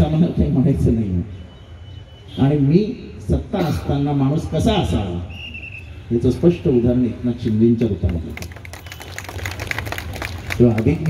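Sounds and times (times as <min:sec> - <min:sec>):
audience clapping: 0:07.5 - 0:11.0.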